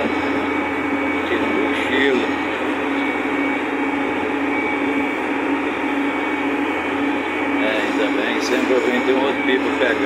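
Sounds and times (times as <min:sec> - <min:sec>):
tractor diesel engine droning: 0:00.0 - 0:10.0.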